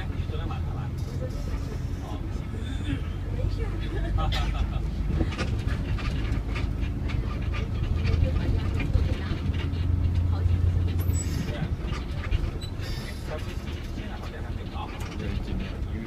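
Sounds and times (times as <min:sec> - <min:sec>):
bus engine drone: 0:00.0 - 0:16.0
clicks and rattles: 0:05.1 - 0:16.0.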